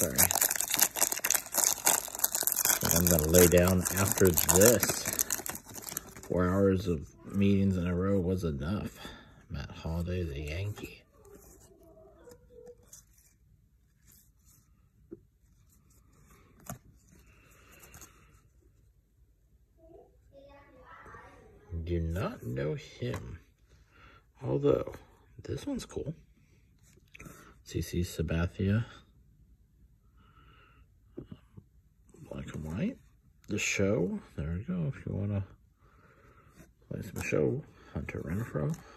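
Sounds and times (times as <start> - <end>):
foil wrapper crinkling: 0.0 - 6.5
cards sliding and rustling: 16.1 - 18.1.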